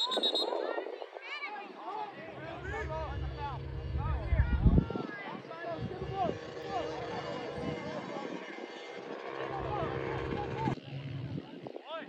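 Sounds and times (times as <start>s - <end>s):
distant voices calling out: 0.0s - 11.4s
low engine-like hum: 2.2s - 11.4s.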